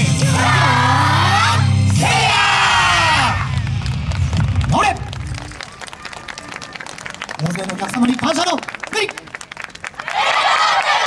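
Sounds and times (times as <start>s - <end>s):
music: 0.0s - 4.6s
group of people shouting together: 0.4s - 3.5s
rising yell: 0.4s - 3.5s.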